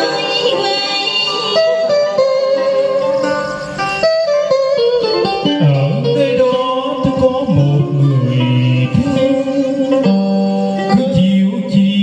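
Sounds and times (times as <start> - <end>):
karaoke backing music: 0.0 - 12.0
plucked guitar: 0.0 - 12.0.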